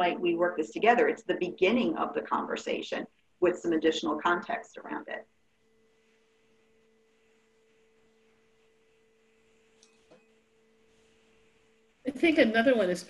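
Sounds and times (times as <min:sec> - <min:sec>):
faint low two-tone hum: 0:00.0 - 0:13.0.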